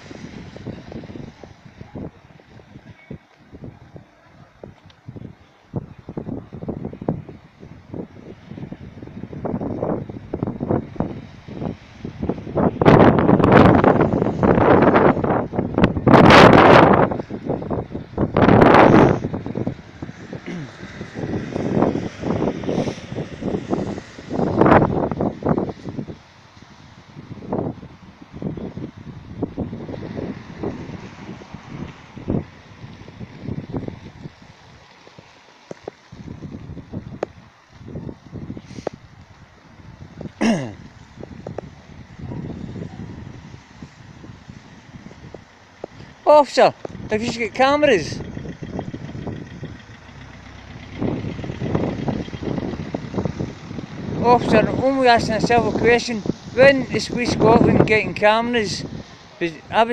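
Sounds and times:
wind buffeting microphone: 0.0 - 59.9
faint voices: 1.3 - 5.7.

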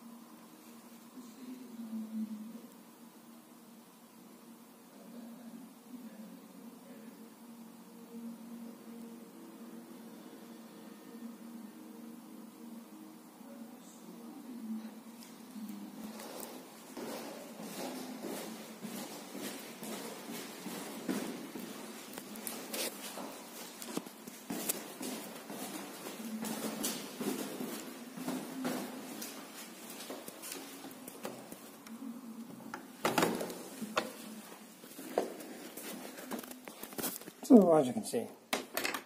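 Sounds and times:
footsteps on stairs: 16.0 - 31.8, 32.7 - 37.2
phone knocks and rustling: 33.0 - 34.2.

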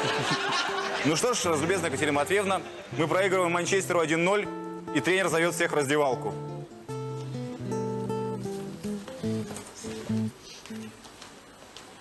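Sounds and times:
plucked guitar notes: 0.0 - 10.3.

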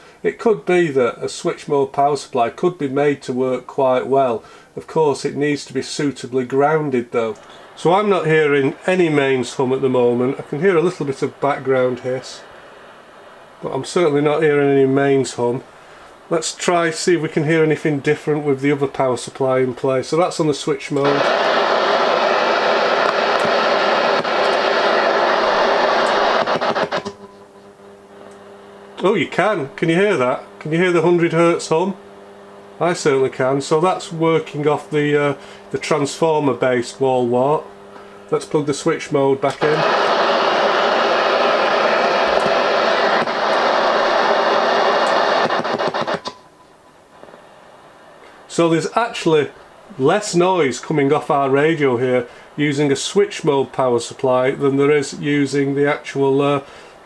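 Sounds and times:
mains hum: 0.0 - 57.0
radio static hiss: 0.0 - 57.0
radio crackles: 0.2 - 57.0.

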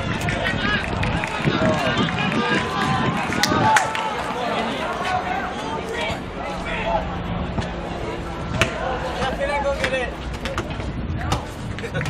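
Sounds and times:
wind rumbling on microphone: 0.0 - 9.4, 10.1 - 12.0
people shouting and calling out: 0.0 - 12.0.

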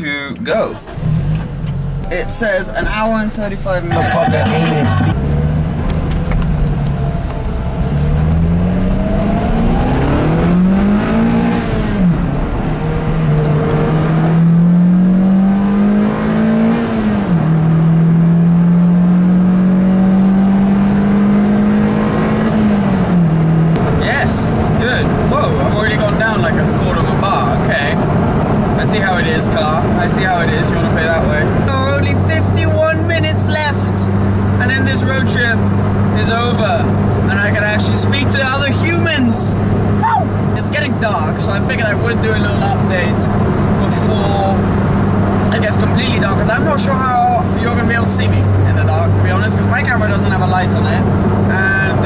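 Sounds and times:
road noise: 0.0 - 52.0
car engine accelerating through gears: 0.4 - 52.0.

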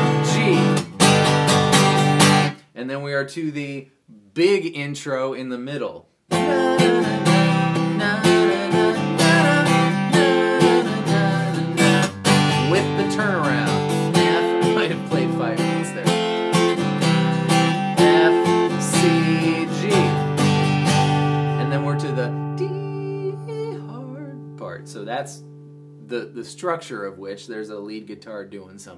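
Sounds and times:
acoustic guitar strumming chords: 0.0 - 2.6, 6.3 - 26.7.

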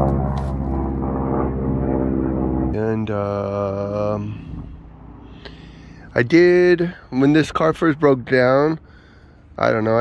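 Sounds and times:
airplane droning overhead: 0.0 - 10.0.

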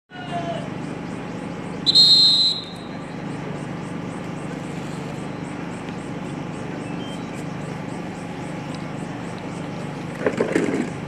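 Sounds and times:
referee's whistle blast: 1.9 - 2.9.

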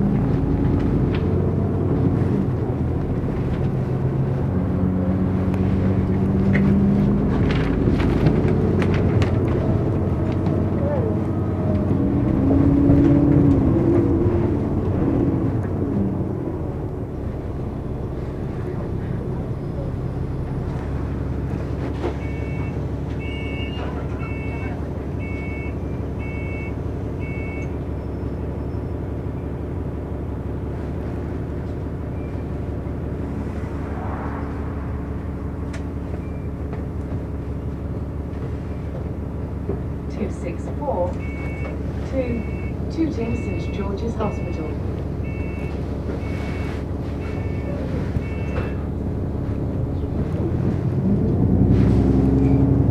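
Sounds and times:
bus engine drone: 0.0 - 52.9
road noise: 0.0 - 52.9.

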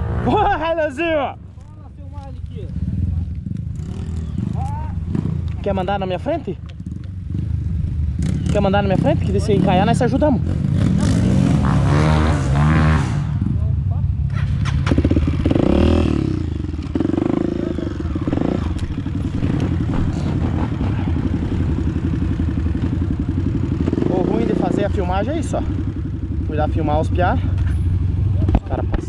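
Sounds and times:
dirt bike engine running: 1.5 - 13.7, 14.4 - 29.0.

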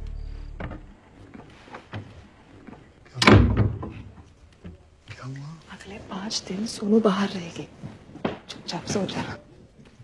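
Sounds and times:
door slamming: 3.2 - 4.1.

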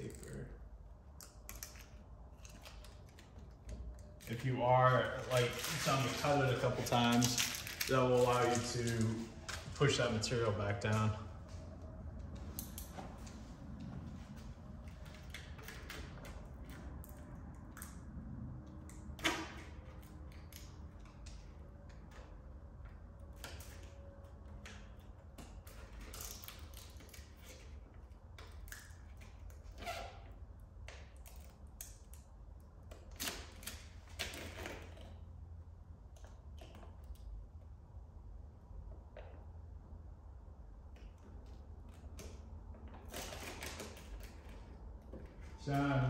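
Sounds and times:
faint low hum: 0.0 - 46.0
film and paper rustling: 4.1 - 10.0.

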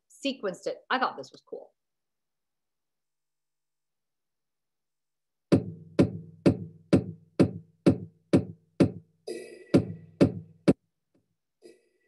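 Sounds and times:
electronic drum beat: 5.5 - 10.8.

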